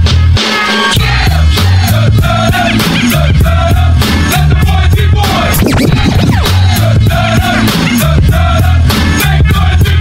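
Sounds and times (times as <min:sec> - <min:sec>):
hip hop music with steady beat: 0:01.6 - 0:10.0
record scratching on turntable: 0:05.2 - 0:06.8.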